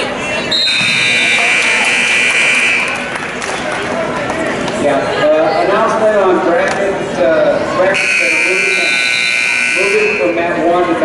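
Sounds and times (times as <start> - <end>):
scoreboard buzzer: 0.7 - 3.0, 8.0 - 10.4.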